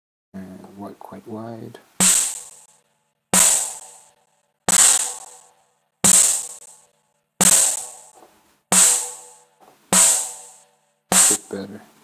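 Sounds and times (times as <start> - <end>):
cymbal-heavy drum hit: 2.0 - 2.7, 3.4 - 6.8, 7.4 - 11.6.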